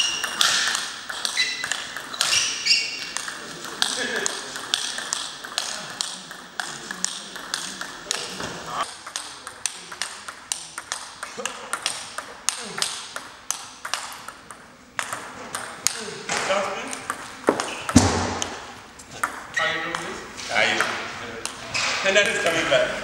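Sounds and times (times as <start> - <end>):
table tennis ball clicks: 0.0 - 18.6, 20.8 - 21.6.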